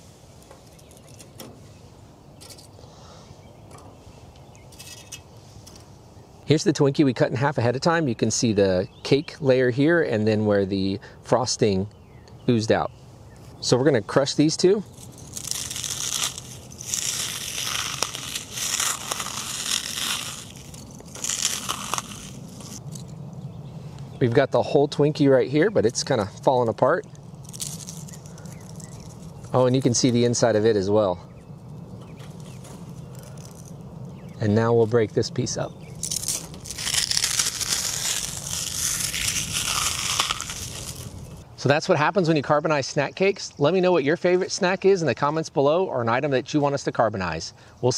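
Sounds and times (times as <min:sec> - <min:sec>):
charcoal crunching between fingers: 0:14.8 - 0:23.2, 0:25.7 - 0:30.5, 0:32.1 - 0:41.4
sharp cracks: 0:14.9 - 0:23.2, 0:26.4 - 0:30.2, 0:35.9 - 0:41.4.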